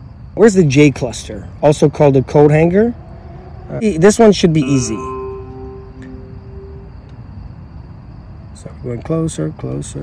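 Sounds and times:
steady held musical tone: 4.4 - 7.1
higher tones: 4.5 - 7.0.

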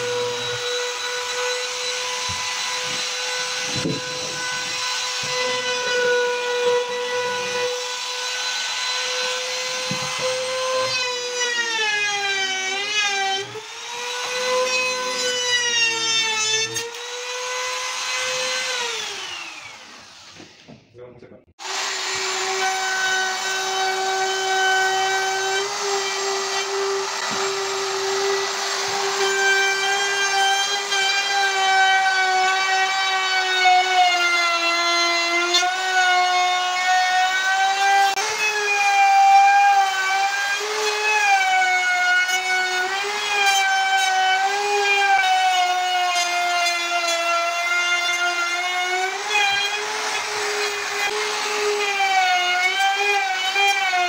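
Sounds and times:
wood router whining: 0.0 - 21.0, 21.6 - 54.0.

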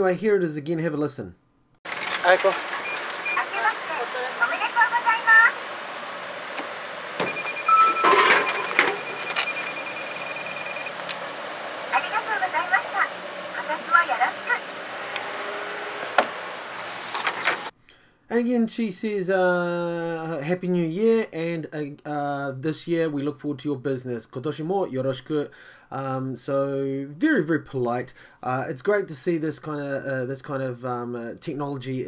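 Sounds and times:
electronic beep tone: 2.8 - 4.6, 7.2 - 11.1
recorded woman's voice speaking: 3.2 - 5.6, 11.9 - 14.7.

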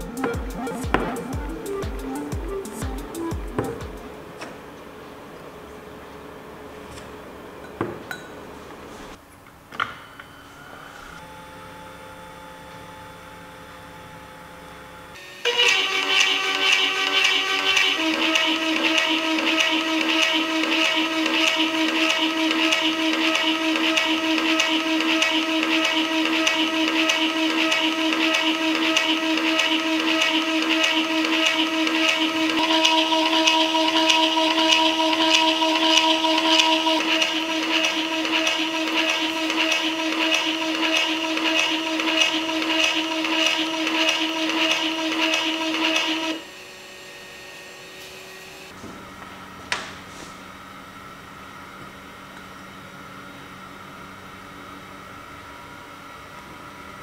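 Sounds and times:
pump motor whine: 0.0 - 8.8, 9.6 - 57.0.

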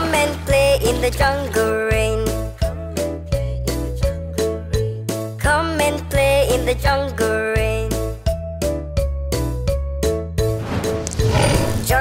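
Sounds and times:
children's song music: 0.0 - 12.0.

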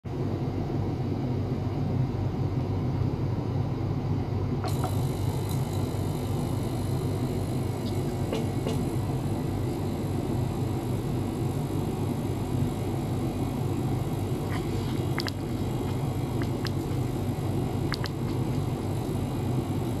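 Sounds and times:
ultrasonic cleaner humming: 4.5 - 20.0.

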